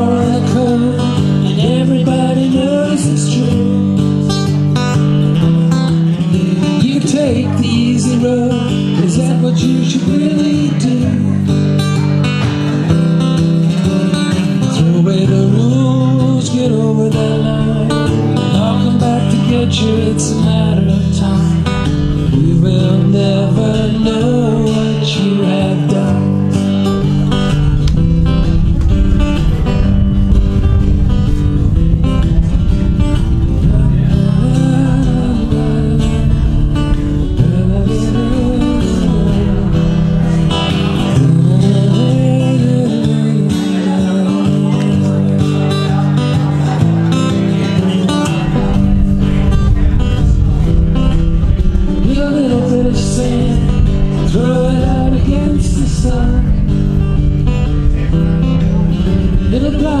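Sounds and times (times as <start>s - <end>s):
acoustic guitar strumming: 0.0s - 60.0s
bending melody line: 12.6s - 45.7s.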